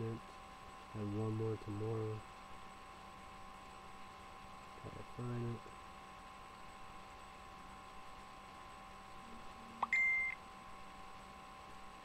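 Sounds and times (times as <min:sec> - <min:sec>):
faint electrical whine: 0:00.0 - 0:12.0
short electronic beep: 0:09.8 - 0:10.4.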